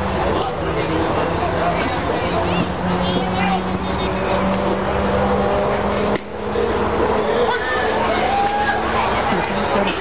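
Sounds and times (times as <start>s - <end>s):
people talking indistinctly: 0.0s - 10.0s.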